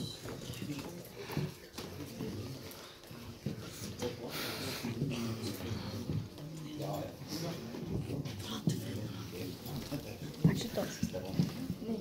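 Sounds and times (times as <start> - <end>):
low voices talking: 0.0 - 12.0.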